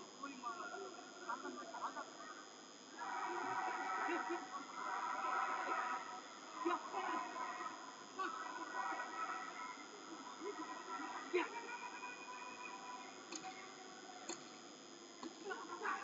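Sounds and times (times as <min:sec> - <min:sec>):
voices calling out: 0:00.2 - 0:16.0.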